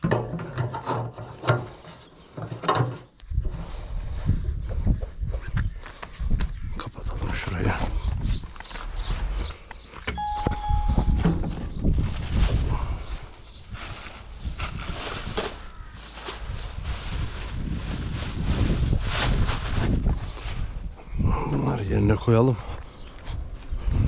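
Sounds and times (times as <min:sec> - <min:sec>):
brief steady tone: 0:10.2 - 0:11.8
plastic bags rustling: 0:10.3 - 0:20.1.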